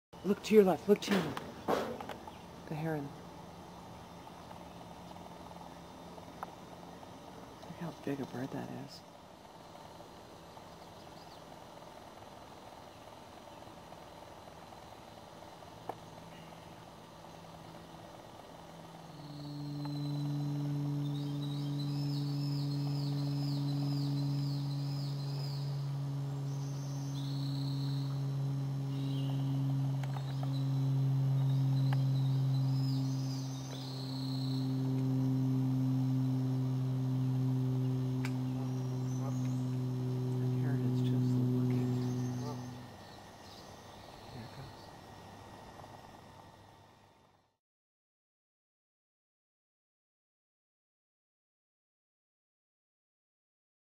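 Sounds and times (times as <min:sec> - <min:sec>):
small bird singing: 0:00.2 - 0:11.7, 0:15.9 - 0:18.1, 0:18.9 - 0:45.1
steady low motor hum: 0:00.2 - 0:47.6.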